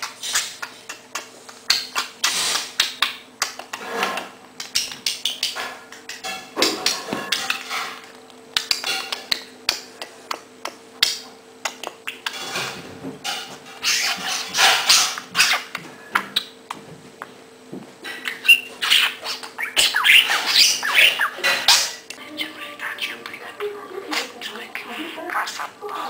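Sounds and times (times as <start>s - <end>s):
budgerigar chattering and squawking: 18.3s - 26.0s.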